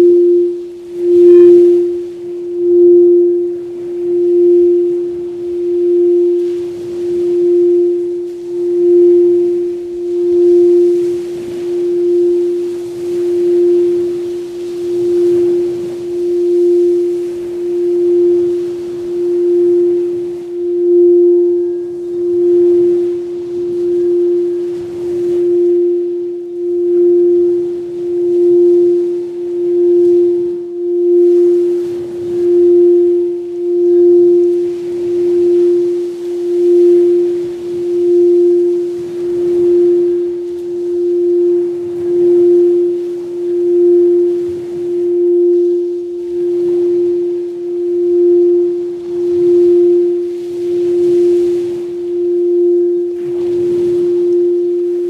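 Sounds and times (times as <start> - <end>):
singing bowl drone pulsing: 0.0 - 55.0.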